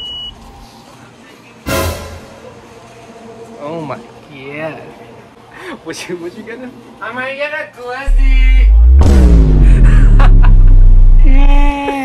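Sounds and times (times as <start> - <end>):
deep bass boom: 8.1 - 11.8.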